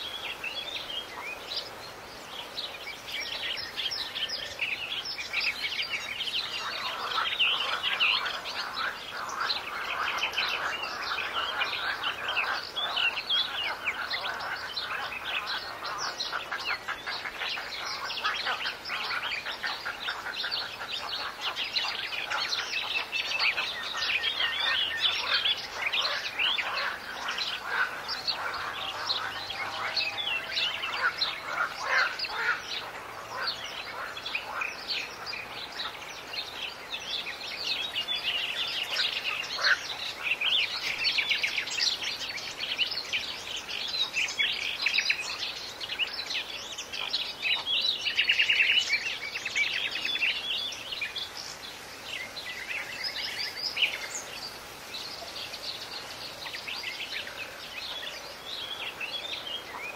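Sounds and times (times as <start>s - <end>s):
small birds chirping: 0.0s - 59.9s.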